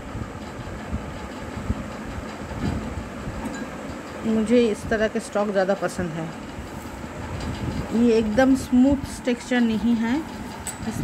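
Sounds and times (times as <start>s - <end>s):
low rattling rumble: 0.0s - 11.0s.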